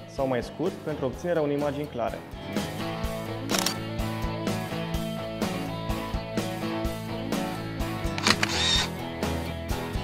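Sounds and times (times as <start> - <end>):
background music with beat: 1.6 - 10.0
camera shutter sound effect: 3.5 - 3.8, 8.1 - 8.9.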